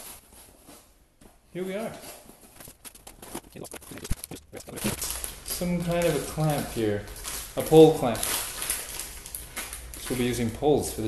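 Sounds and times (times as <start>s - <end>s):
packing tape ripping: 2.5s - 10.5s.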